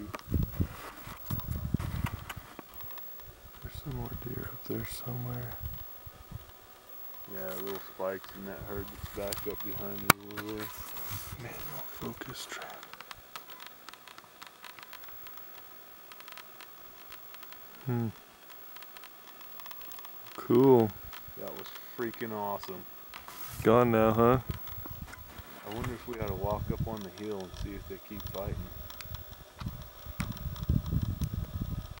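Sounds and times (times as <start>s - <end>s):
quiet hiss: 0.0s - 32.0s
wind buffeting microphone: 0.2s - 2.6s, 24.3s - 27.0s, 27.6s - 32.0s.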